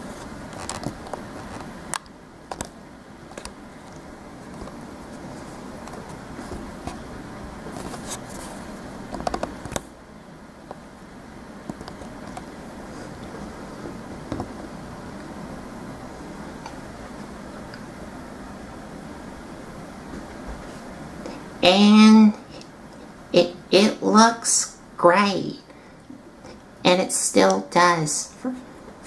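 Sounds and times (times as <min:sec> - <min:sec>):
low room noise: 0:00.0 - 0:29.0.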